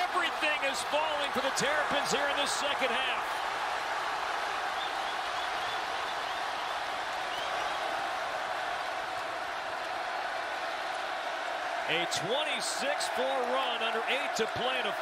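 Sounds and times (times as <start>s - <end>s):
crowd cheering: 0.0s - 15.0s.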